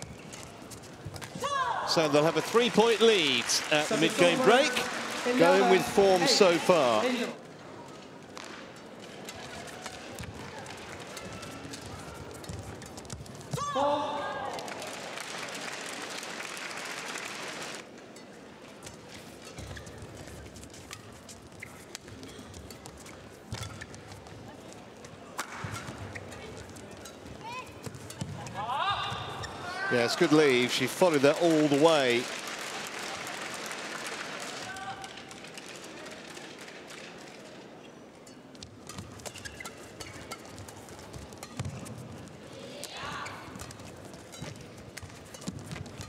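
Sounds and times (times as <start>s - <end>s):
crowd noise: 0.0s - 46.0s
racket hitting shuttlecock: 18.8s - 24.1s, 25.3s - 28.4s, 38.3s - 42.2s.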